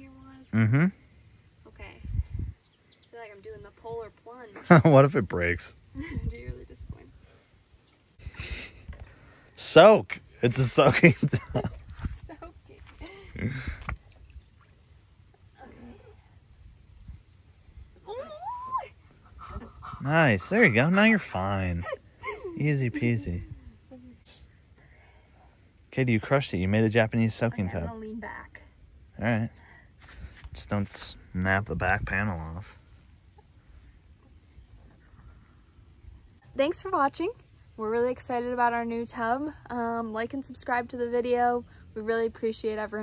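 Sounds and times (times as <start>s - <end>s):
insect chirring: 0.0s - 43.0s
woman squealing: 18.0s - 19.7s.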